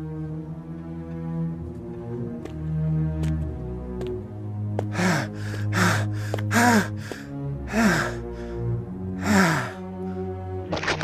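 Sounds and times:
dramatic music score: 0:00.0 - 0:11.0
man gasping and groaning: 0:04.8 - 0:09.9.

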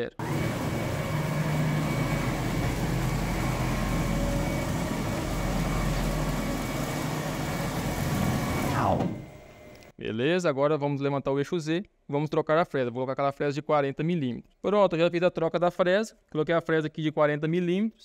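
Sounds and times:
stepper motors whining: 0:00.0 - 0:09.9.

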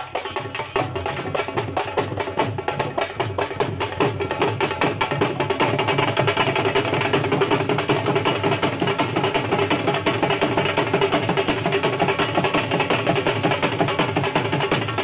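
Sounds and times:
barrel drums beaten with sticks: 0:00.0 - 0:15.0.

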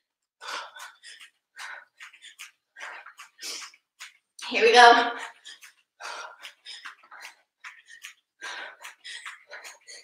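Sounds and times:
woman breathing hard: 0:00.0 - 0:03.8, 0:05.2 - 0:10.0.

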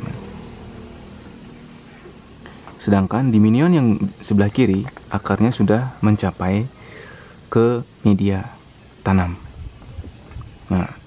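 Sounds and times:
outdoor ambience hiss: 0:00.0 - 0:11.0.

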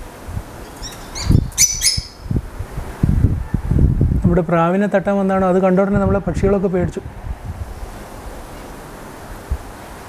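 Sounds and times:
birds chirping: 0:00.0 - 0:02.4
low rumbling noise: 0:00.0 - 0:10.0.

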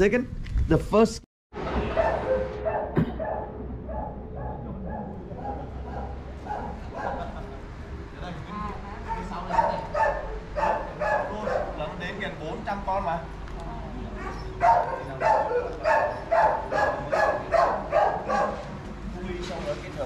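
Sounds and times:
dog barking: 0:01.9 - 0:07.4, 0:09.4 - 0:12.0, 0:14.2 - 0:18.7.

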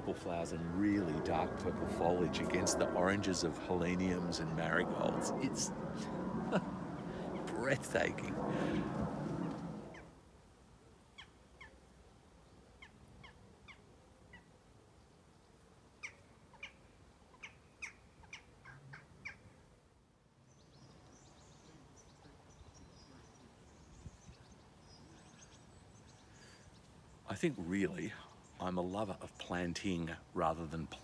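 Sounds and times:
faint high bird twittering: 0:20.5 - 0:28.7.

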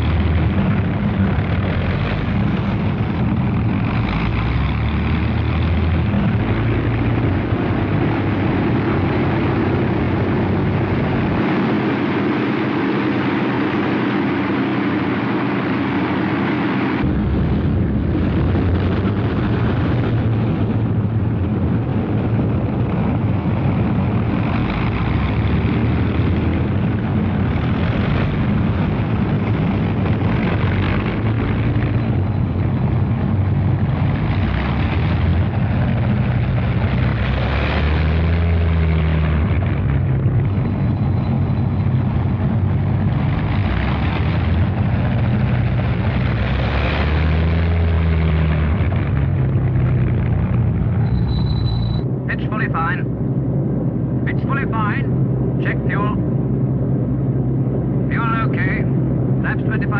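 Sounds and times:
propeller aircraft engines droning: 0:00.0 - 0:59.9.

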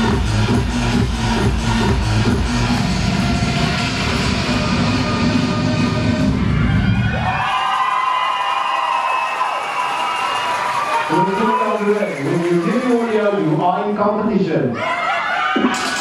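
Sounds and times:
electronic dance music: 0:00.0 - 0:07.5, 0:09.6 - 0:16.0
spectators cheering and screaming: 0:02.2 - 0:13.5, 0:14.7 - 0:16.0.

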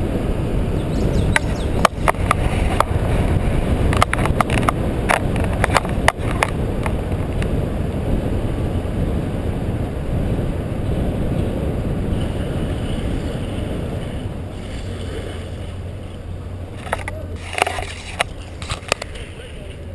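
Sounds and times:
car road noise: 0:00.0 - 0:19.9
wind buffeting microphone: 0:00.0 - 0:19.9.

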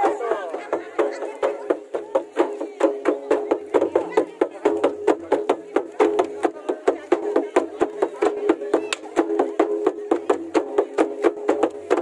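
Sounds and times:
hand-struck barrel drum: 0:00.0 - 0:12.0
stick-beaten drum: 0:00.0 - 0:12.0.

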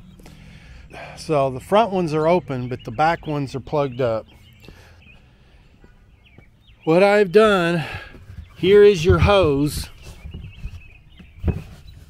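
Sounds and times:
faint rustling of hose: 0:04.4 - 0:12.0.

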